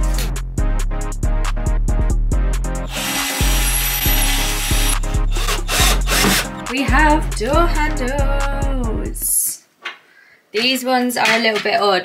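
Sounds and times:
background music with steady beat: 0.0 - 9.3
cordless drill drilling: 2.9 - 6.6.

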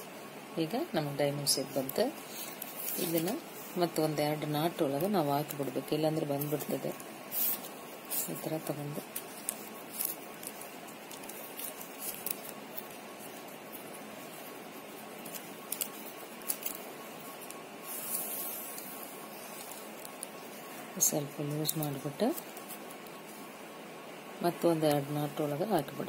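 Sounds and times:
steady hiss: 0.0 - 26.0
wire clicks and rustles: 1.1 - 23.4.

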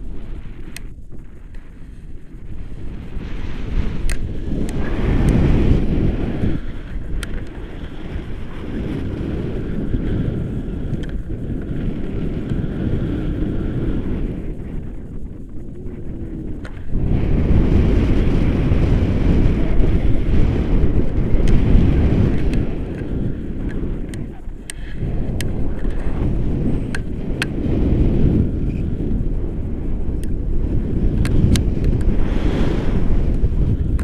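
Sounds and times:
wind roar on microphone: 0.0 - 34.0.

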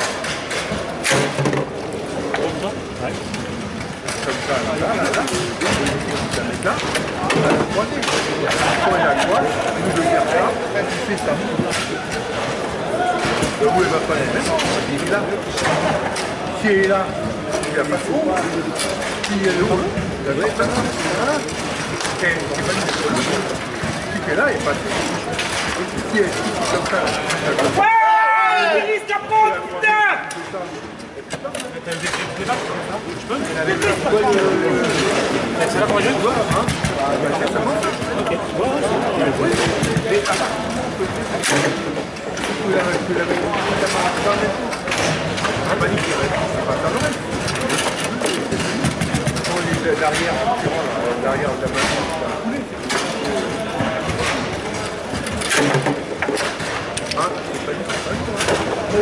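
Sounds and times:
hall chatter: 0.0 - 59.0
table football clacks: 33.8 - 52.2.

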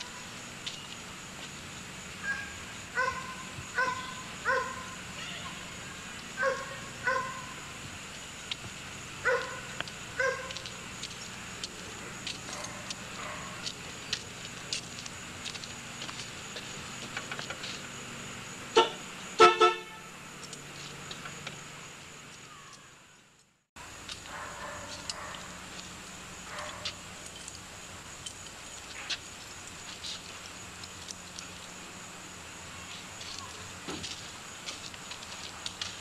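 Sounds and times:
car horn honks: 18.7 - 20.2.

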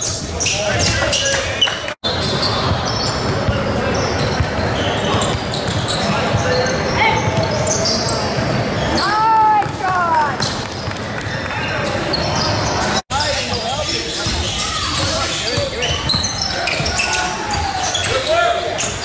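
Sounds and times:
sneakers squeaking: 0.0 - 19.0
basketball bouncing: 2.7 - 6.4, 9.4 - 11.4.

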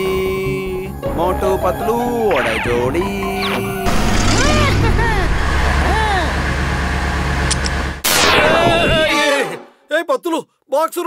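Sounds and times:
cartoon car engine rumble: 3.8 - 7.1.

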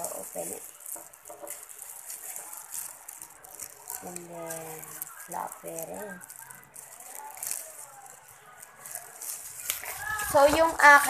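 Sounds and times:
plastic glove crinkling: 0.0 - 11.0.

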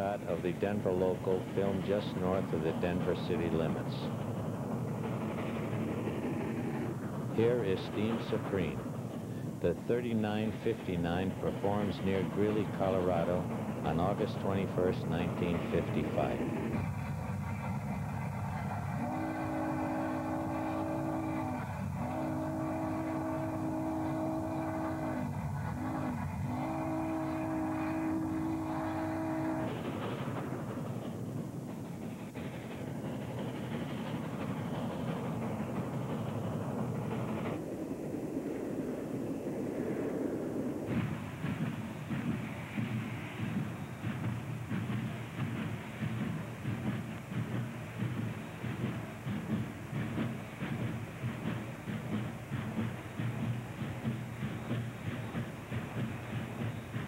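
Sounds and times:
steam locomotive rumble and exhaust: 0.0 - 57.0
steam locomotive chime whistle: 7.4 - 8.8, 9.6 - 16.7, 18.9 - 29.8.

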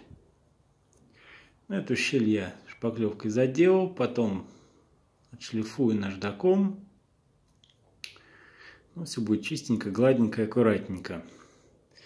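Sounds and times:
faint inhale: 1.1 - 1.6, 8.2 - 8.9, 11.2 - 12.0
man speaking: 1.7 - 4.6, 5.3 - 6.9, 8.9 - 11.4
mouth click: 7.5 - 8.3.

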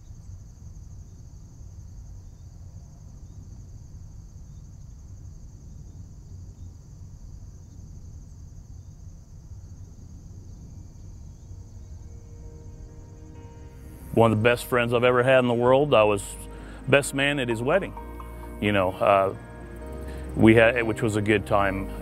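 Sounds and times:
insects trilling: 0.0 - 22.0
low rumble: 10.3 - 22.0
faint musical tones: 10.7 - 22.0.

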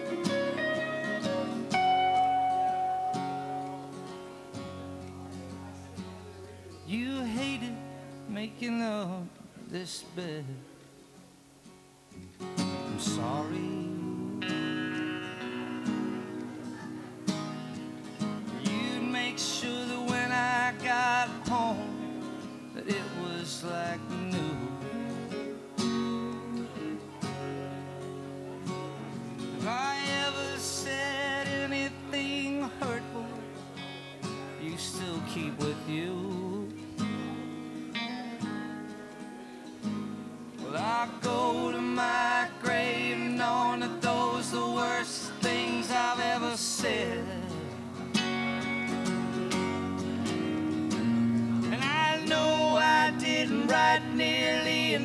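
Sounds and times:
wavering melodic line: 0.0 - 4.1
electric guitar: 0.0 - 55.0
strummed acoustic guitar: 0.0 - 55.0.

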